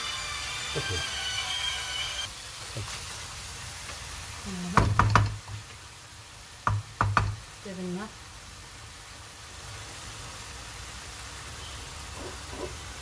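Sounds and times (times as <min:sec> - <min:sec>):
steady high tone: 0:00.0 - 0:02.3
chicken sizzling in a pan: 0:00.0 - 0:13.0
wooden spoon tapping on pan: 0:04.8 - 0:05.7, 0:06.6 - 0:07.4.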